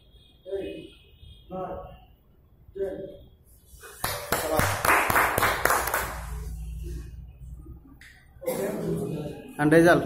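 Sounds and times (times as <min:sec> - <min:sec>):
voices: 0:00.4 - 0:03.3, 0:06.3 - 0:10.0
hand clapping: 0:03.9 - 0:06.3.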